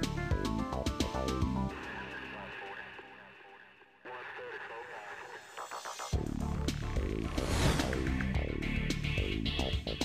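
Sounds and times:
background music: 0:00.0 - 0:10.0
thin radio-like voice: 0:04.0 - 0:05.6.

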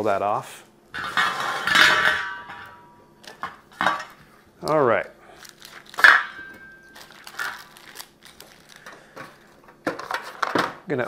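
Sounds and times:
metal lid clattering on a table: 0:01.0 - 0:02.8
metallic ring: 0:01.0 - 0:03.0.

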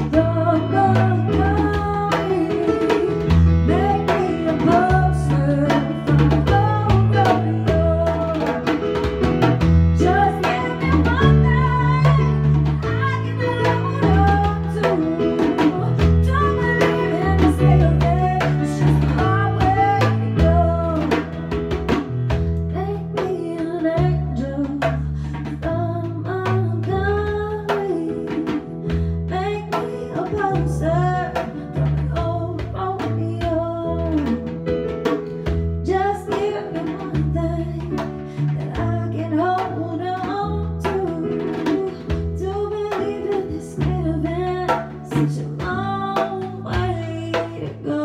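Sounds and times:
keyboard chords and bass: 0:00.0 - 0:23.2, 0:30.4 - 0:36.2
djembe hand drum: 0:00.0 - 0:48.0
woman singing: 0:00.0 - 0:48.0.

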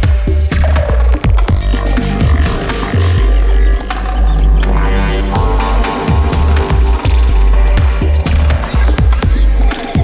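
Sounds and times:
deep bass line: 0:00.0 - 0:09.8
downtempo electronic music: 0:00.0 - 0:10.0
sharp hi-hat hits: 0:05.2 - 0:09.5
steady kick drum: 0:05.3 - 0:09.6.

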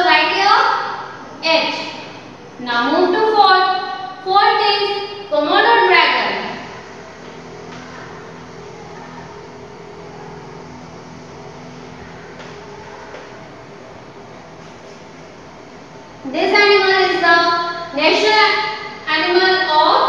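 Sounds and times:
woman speaking: 0:00.0 - 0:06.8, 0:16.2 - 0:20.0
low room hum: 0:00.0 - 0:20.0.

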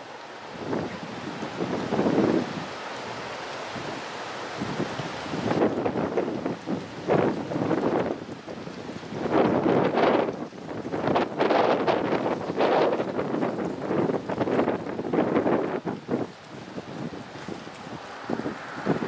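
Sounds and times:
gusty wind buffeting microphone: 0:00.5 - 0:02.7, 0:04.6 - 0:19.0.

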